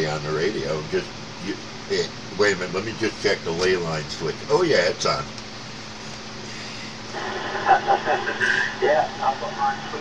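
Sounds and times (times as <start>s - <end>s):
faint steady hum: 0.0s - 10.0s
radio hiss: 6.1s - 10.0s
tinny laugh over radio: 7.1s - 9.9s.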